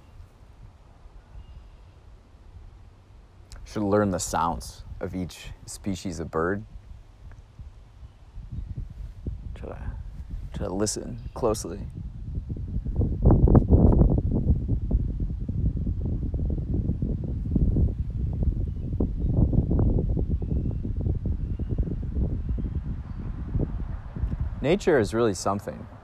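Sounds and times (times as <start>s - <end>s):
wind gusting across microphone: 0.0s - 26.0s
faint short bird chirps: 1.2s - 2.0s.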